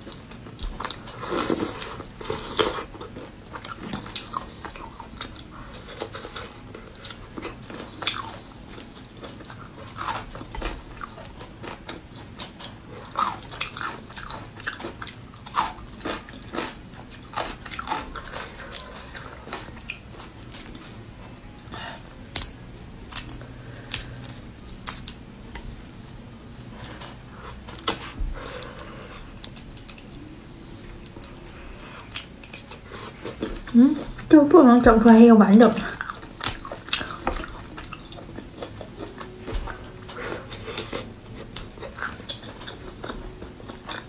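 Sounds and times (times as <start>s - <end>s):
chewing: 0.0s - 25.9s, 26.7s - 34.3s, 35.6s - 44.0s.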